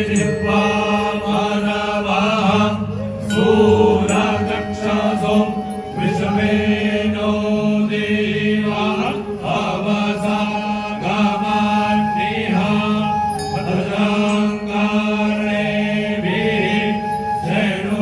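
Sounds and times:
group chanting into microphones: 0:00.0 - 0:18.0.

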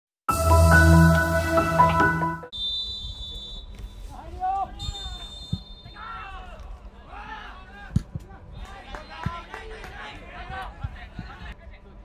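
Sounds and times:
outdoor ambience: 0:00.4 - 0:12.0.

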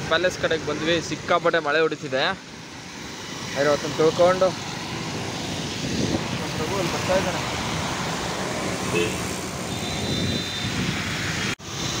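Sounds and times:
traffic on wet road: 0:00.0 - 0:12.0.

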